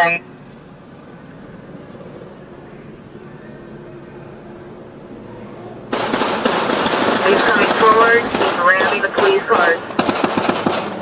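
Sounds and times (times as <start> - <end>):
low background hum: 0.0 - 11.0
rapid gunfire: 5.9 - 11.0.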